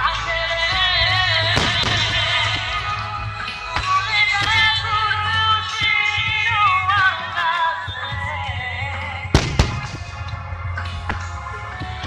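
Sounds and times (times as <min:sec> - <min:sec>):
music playing: 0:00.0 - 0:12.0
fireworks bursting: 0:01.4 - 0:03.0, 0:09.4 - 0:10.4.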